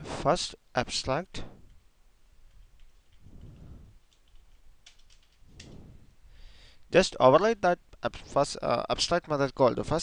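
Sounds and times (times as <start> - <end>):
soft low rumble: 2.5 - 4.1, 5.4 - 6.4
keyboard keystrokes: 4.1 - 5.4.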